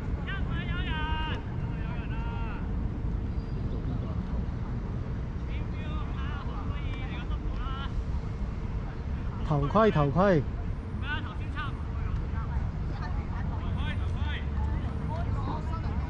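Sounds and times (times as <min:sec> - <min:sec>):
traffic rumble: 0:00.0 - 0:16.0
wind: 0:00.0 - 0:16.0.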